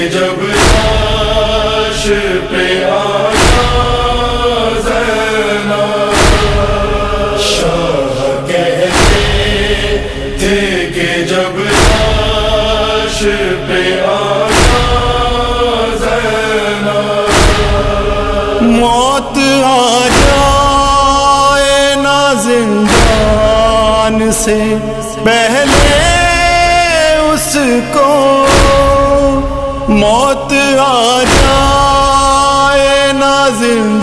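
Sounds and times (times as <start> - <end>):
chorus of voices chanting: 0.0 - 34.0
heavy drum beat: 0.4 - 11.0, 11.6 - 22.0, 22.8 - 27.6, 28.3 - 30.6, 31.2 - 33.2.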